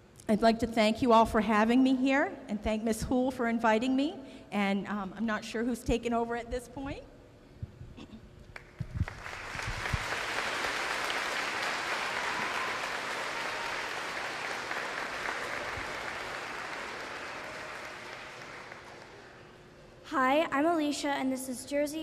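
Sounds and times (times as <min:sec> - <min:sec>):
audience applauding: 0:08.6 - 0:19.6.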